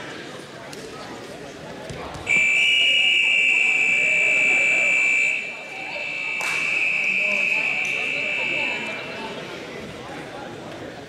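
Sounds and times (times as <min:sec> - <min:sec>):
scoreboard buzzer tone: 0:02.3 - 0:09.2.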